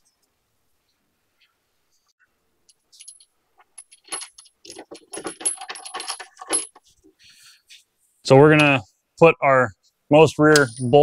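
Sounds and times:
steel parts clinking and rattling: 2.7 - 7.0, 10.5 - 11.0.

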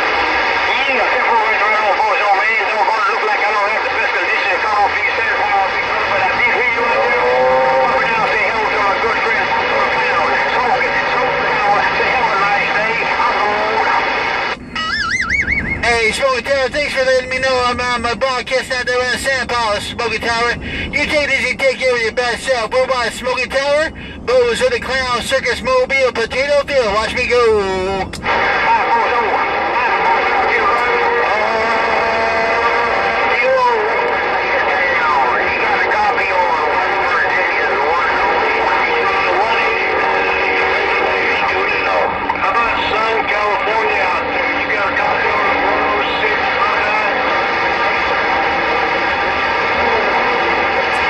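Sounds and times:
radio voice transmission: 0.0 - 51.0
warbling electronic tone: 14.6 - 16.0.

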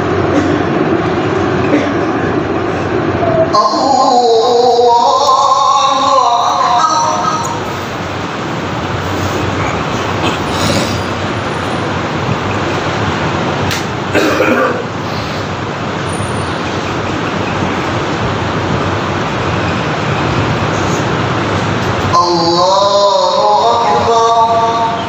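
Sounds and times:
hiss and rumble: 0.0 - 25.0.

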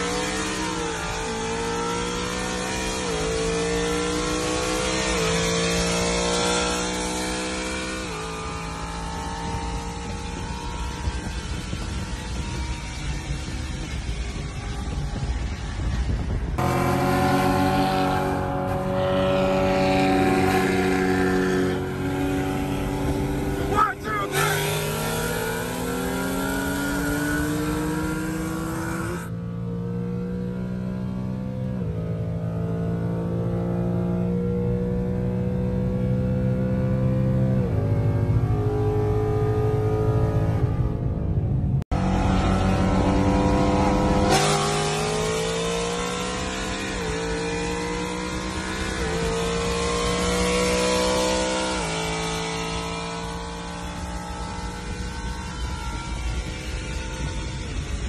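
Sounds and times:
car engine at full throttle: 0.0 - 58.0.

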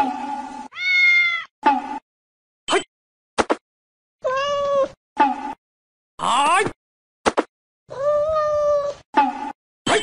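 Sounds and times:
cat meowing: 0.7 - 1.5, 4.2 - 5.0, 7.9 - 9.0.

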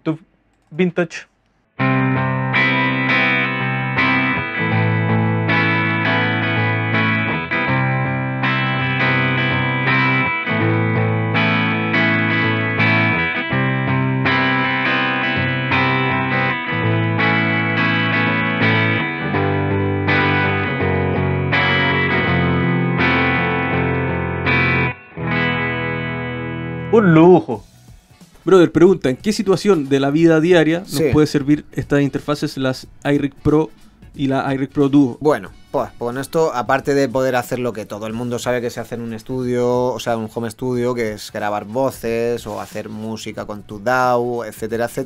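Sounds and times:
electric guitar chords: 1.8 - 28.2.

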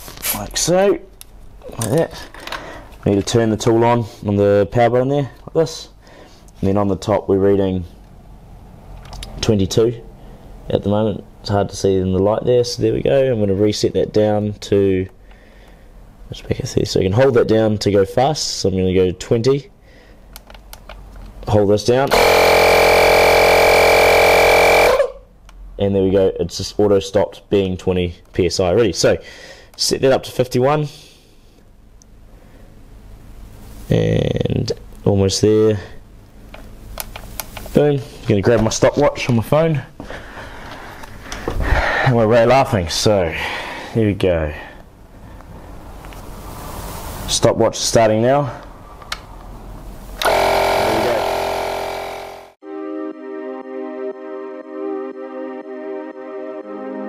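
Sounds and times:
tyre inflator compressor running: 22.1 - 25.1, 50.2 - 52.6.

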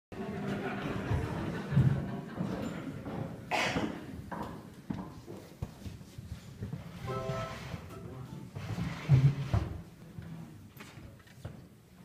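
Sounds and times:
low background murmur: 0.2 - 12.0.

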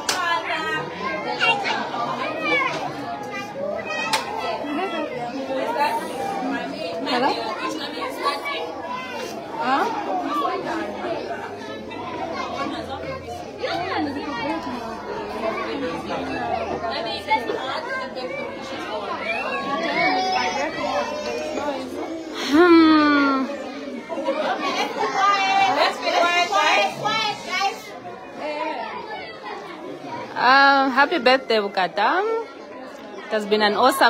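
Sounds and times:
young children chattering: 0.0 - 34.0.

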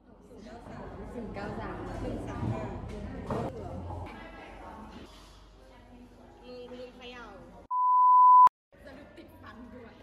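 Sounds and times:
high-pitched censor bleep: 7.7 - 8.5.

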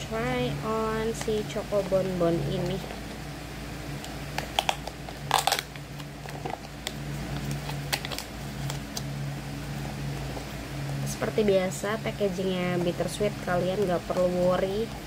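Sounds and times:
steady low hum: 0.0 - 15.0
paper label crackling rustle: 4.4 - 9.1.

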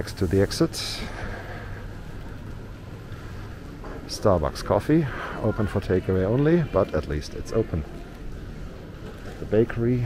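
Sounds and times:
airport terminal rumble: 0.0 - 10.0.

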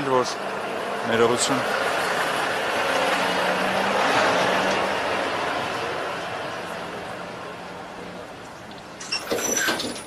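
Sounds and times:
heavy truck passing: 0.0 - 9.0
tyre and road noise: 0.0 - 10.0.

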